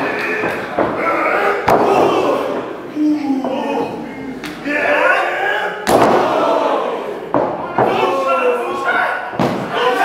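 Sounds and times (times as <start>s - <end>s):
voices shouting: 0.0s - 10.0s.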